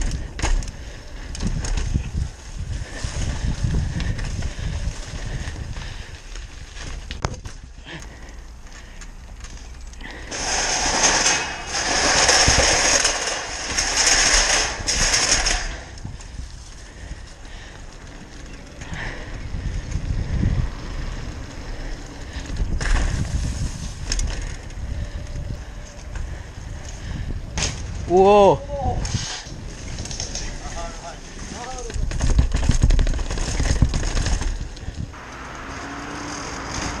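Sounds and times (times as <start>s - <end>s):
bike rattling: 0.0s - 37.0s
bike tyres rolling: 0.0s - 37.0s
wind on microphone: 1.1s - 6.7s, 18.8s - 30.7s.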